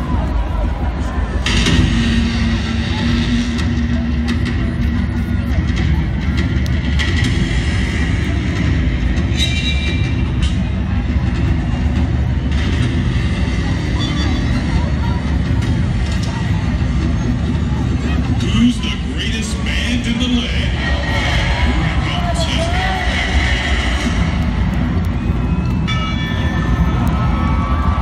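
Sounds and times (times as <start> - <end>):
low rumble: 0.0 - 28.0
stadium crowd chatter: 0.0 - 28.0.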